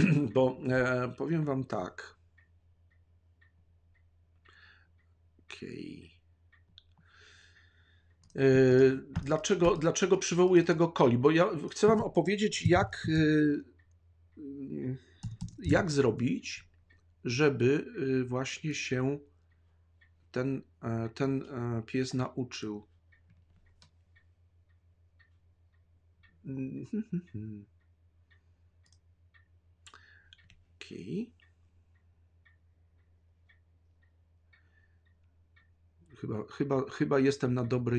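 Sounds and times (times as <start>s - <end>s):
clock ticking: 0.0s - 37.9s
low steady hum: 0.0s - 37.9s
faint clicks: 1.9s - 17.2s, 22.5s - 37.9s
soft breath: 4.4s - 5.0s, 7.0s - 8.2s, 29.9s - 30.5s.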